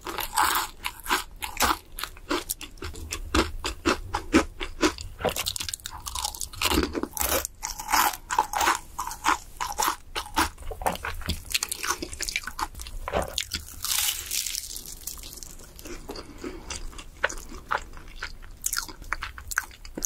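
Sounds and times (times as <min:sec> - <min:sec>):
crunching and chewing fried chicken: 0:00.0 - 0:20.0.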